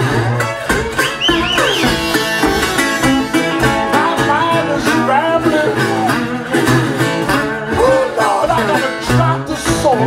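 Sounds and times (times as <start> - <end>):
acoustic blues on resonator guitar: 0.0 - 10.0.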